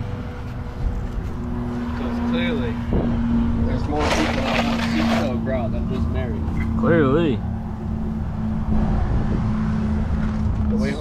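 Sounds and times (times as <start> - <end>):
people talking: 2.0 - 2.8, 3.6 - 7.4, 10.7 - 11.0.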